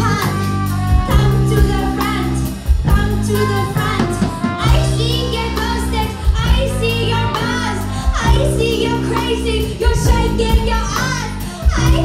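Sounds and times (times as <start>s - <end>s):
bass line: 0.0s - 12.0s
drum kit: 0.0s - 12.0s.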